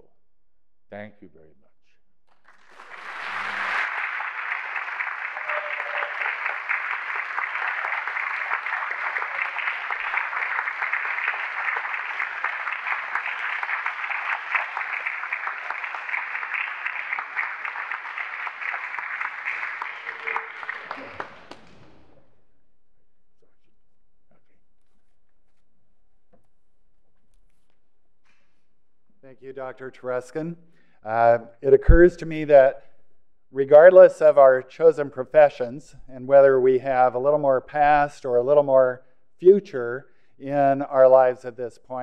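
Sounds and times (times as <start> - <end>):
audience clapping: 2.3 - 22.2.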